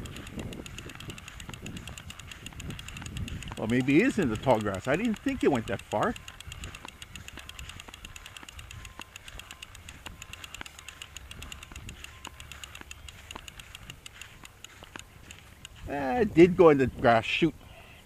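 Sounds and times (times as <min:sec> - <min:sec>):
fishing reel clicking: 0:00.0 - 0:16.2.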